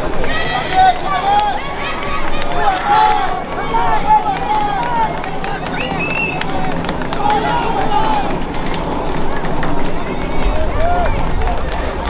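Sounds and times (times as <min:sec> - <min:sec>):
murmur of spectators: 0:00.0 - 0:12.0
voices calling out: 0:00.0 - 0:12.0.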